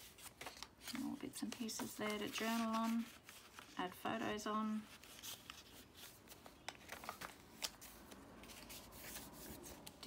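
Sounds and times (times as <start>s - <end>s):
paper rustling: 0.0s - 10.0s.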